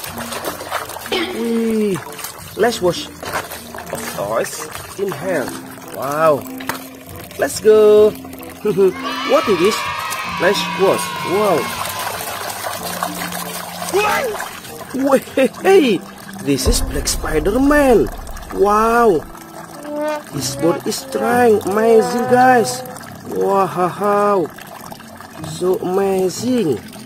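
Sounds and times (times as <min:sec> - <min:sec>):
water sloshing in a plastic bowl: 0:00.0 - 0:08.5
water splashing in a basin: 0:00.0 - 0:27.0.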